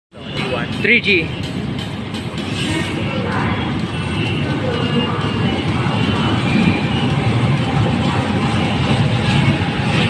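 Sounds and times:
train wheels rumbling on rails: 0.1 - 10.0.

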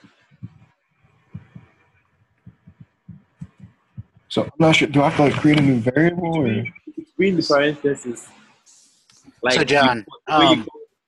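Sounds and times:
faint soft thuds: 0.3 - 1.8, 2.4 - 4.4.

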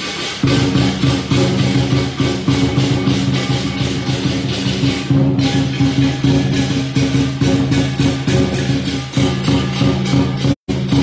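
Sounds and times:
drum cymbals and gong beat: 0.0 - 11.0.

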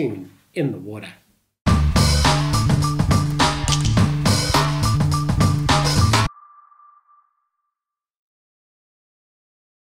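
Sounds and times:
ringing music note: 6.3 - 8.0.

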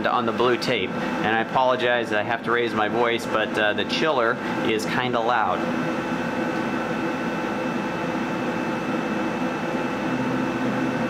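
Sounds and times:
water chiller humming: 0.0 - 11.0.

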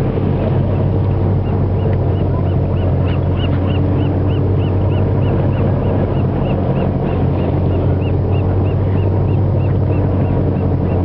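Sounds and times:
boat engine hum: 0.0 - 11.0
gull calling: 0.7 - 11.0.

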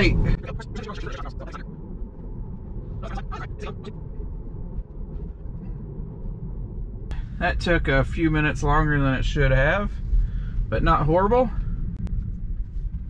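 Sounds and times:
road and tyre rumble in car cabin: 0.0 - 13.0.

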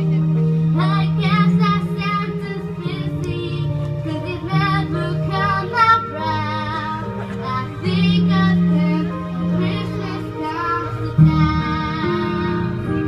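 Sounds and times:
low accompaniment: 0.0 - 13.0
children's choir singing: 0.8 - 13.0.

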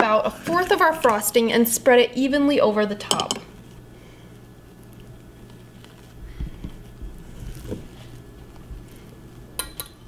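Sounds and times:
steady low hum: 0.0 - 10.0
spatula soft taps and smearing: 4.8 - 9.2.

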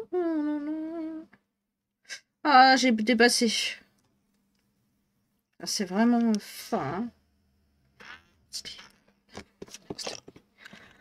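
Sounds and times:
woman humming: 0.0 - 1.4.

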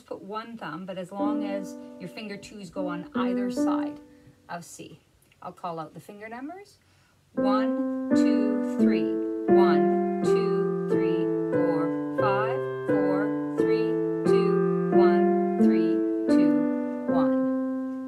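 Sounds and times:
digital piano playing scale: 1.2 - 4.2, 7.4 - 18.0.

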